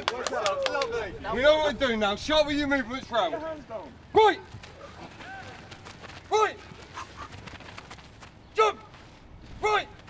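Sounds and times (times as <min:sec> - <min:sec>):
man shouting a command: 0:04.1 - 0:04.5, 0:06.3 - 0:06.7, 0:08.6 - 0:08.9, 0:09.6 - 0:10.0
footsteps on grass: 0:04.5 - 0:10.0.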